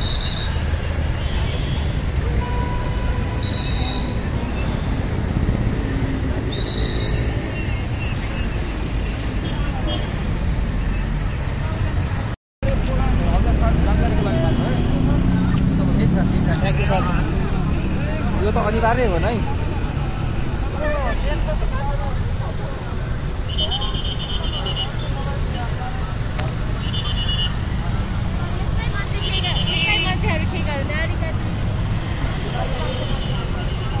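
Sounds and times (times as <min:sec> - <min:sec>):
passing vehicle engines: 0:00.0 - 0:34.0
people's voices: 0:09.0 - 0:34.0.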